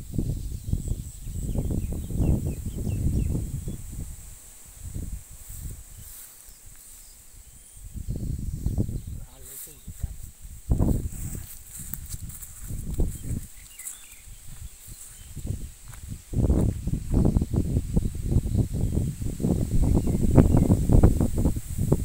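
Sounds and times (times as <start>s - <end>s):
wind gusts on microphone: 0.0s - 22.0s.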